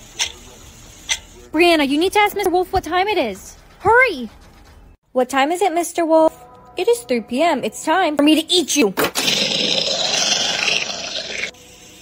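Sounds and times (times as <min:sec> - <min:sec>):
growling roar: 0:09.2 - 0:11.6.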